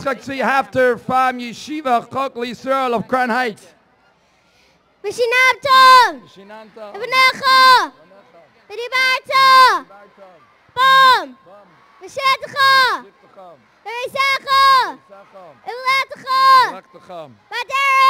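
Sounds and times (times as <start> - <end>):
boy shouting over loudspeaker: 5.0 - 6.3, 6.9 - 8.0, 8.7 - 9.9, 10.7 - 13.1, 13.9 - 18.0.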